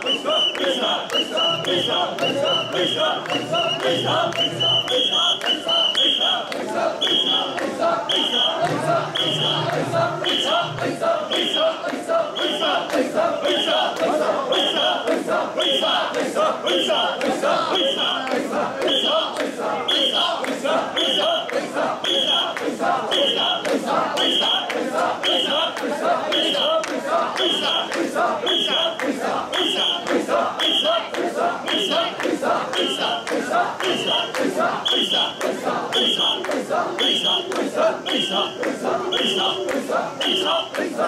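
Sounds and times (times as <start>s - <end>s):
whistle blasts: 0.0s - 10.7s, 12.4s - 13.9s, 14.5s - 15.0s, 16.7s - 17.2s, 18.9s - 19.3s, 19.9s - 20.3s, 21.0s - 23.6s, 24.2s - 25.6s, 27.4s - 29.0s, 29.6s - 30.9s, 33.9s - 36.4s, 37.0s - 39.6s, 40.2s - 40.7s
people chanting in rhythm: 0.0s - 41.0s.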